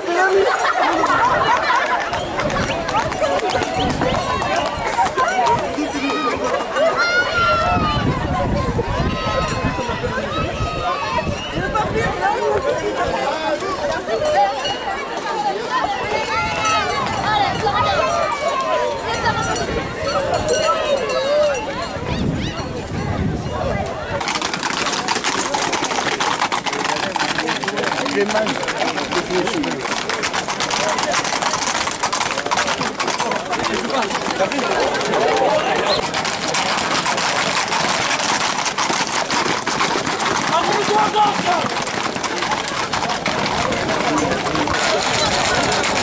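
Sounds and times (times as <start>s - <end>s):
hooves clattering on asphalt: 0.0s - 22.6s, 23.8s - 46.0s
people shouting and calling out: 0.0s - 46.0s.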